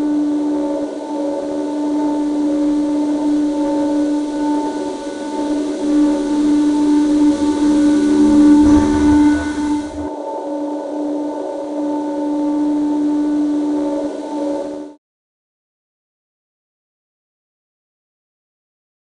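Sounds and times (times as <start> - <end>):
droning cinematic tone: 0.1 - 10.4
low rumble: 6.0 - 10.1.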